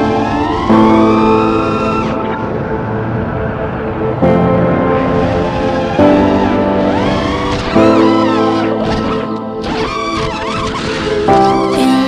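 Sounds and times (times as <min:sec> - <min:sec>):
background music with sustained chords: 0:00.0 - 0:12.0.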